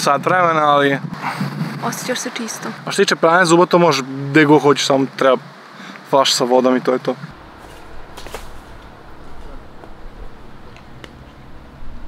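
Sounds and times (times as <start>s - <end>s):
wind rumbling on microphone: 0.0s - 3.3s, 7.2s - 12.0s.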